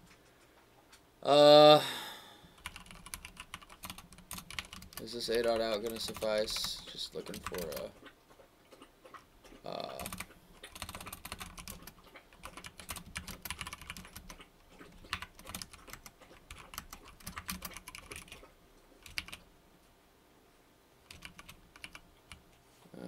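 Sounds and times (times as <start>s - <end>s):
computer keyboard typing: 2.6s - 7.9s, 9.9s - 19.4s, 21.0s - 22.4s.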